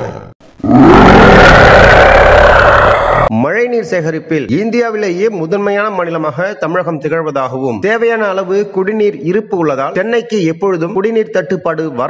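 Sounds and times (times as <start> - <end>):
tiger roaring: 0.0 - 3.3.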